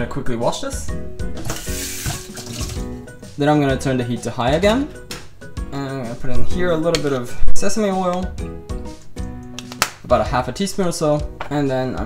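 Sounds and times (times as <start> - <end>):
kitchen tap running: 1.4 - 3.0
saucepan being rinsed: 1.4 - 3.0.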